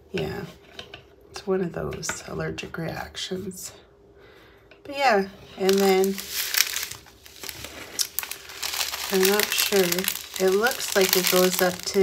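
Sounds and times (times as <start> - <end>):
plastic packaging crinkling: 5.6 - 12.0.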